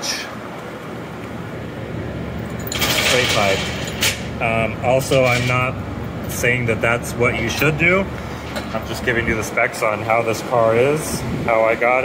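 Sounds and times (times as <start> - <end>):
cooling fans whooshing: 0.0 - 12.0.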